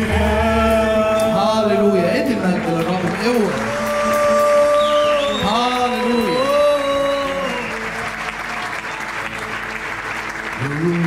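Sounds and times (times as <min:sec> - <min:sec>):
worship music and singing: 0:00.0 - 0:08.7
congregation applauding: 0:01.2 - 0:11.0.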